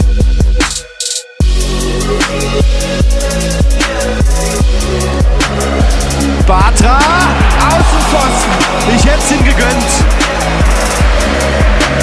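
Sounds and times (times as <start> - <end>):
electronic music: 0.0 - 12.0
bass drum beat: 2.3 - 12.0.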